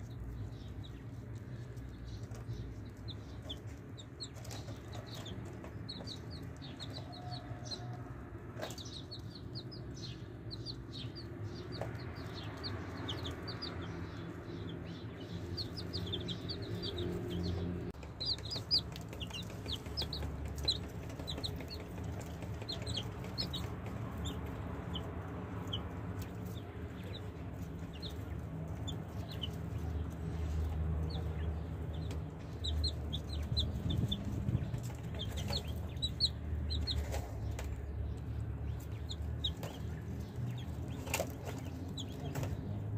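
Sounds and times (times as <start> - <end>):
baby chicks peeping: 0.0 - 42.9
steady low rumble: 8.2 - 42.9.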